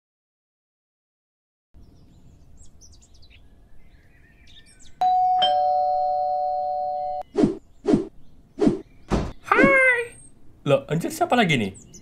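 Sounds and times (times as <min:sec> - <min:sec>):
two-tone doorbell ringing: 0:05.0 - 0:07.2
thumps: 0:09.1 - 0:09.8.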